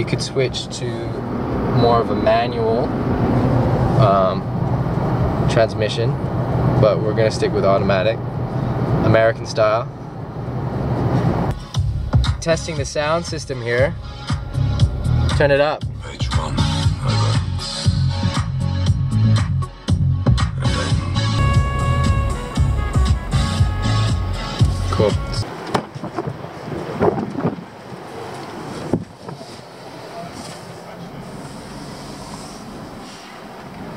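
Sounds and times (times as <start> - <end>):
bass-heavy music on car stereo: 11.5 - 25.4.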